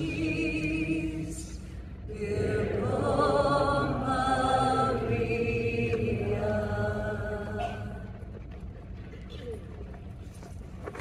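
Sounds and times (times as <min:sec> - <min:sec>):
slow sung chant: 0:00.0 - 0:08.3
low steady drone: 0:00.0 - 0:10.8.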